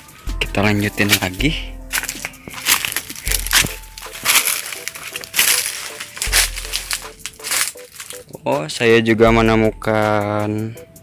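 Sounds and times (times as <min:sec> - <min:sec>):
background music: 0:00.0 - 0:11.0
crunching and rustling dry leaves: 0:00.7 - 0:08.2
stems snapping: 0:01.0 - 0:08.2.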